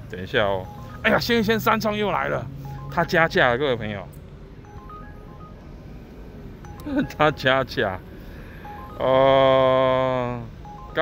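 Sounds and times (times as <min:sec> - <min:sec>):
street background hum: 0:00.0 - 0:11.0
short electronic beeps: 0:00.6 - 0:03.9, 0:04.6 - 0:11.0.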